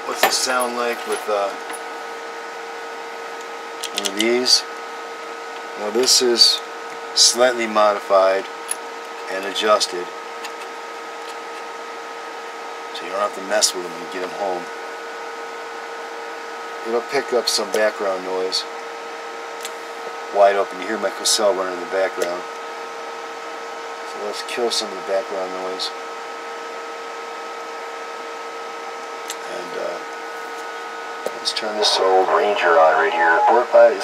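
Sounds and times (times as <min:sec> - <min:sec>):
faint steady whine: 0:29.0 - 0:34.0
steady hum tone: 0:29.9 - 0:34.0.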